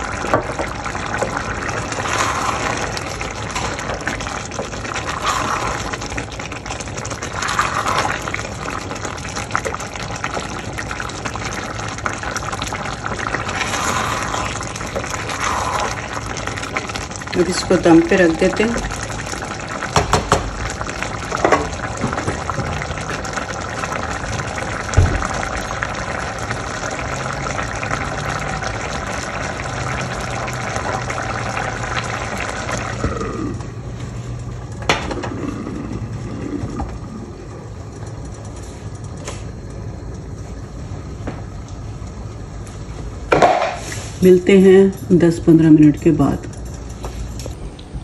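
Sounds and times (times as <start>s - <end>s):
broth bubbling in a pot: 0.0s - 48.0s.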